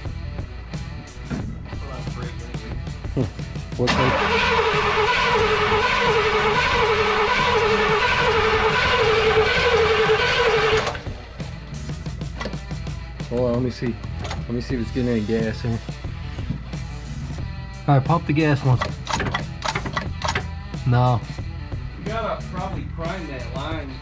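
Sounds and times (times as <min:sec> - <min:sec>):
starter cranking engine: 0:03.8 - 0:11.2, 0:18.7 - 0:20.6.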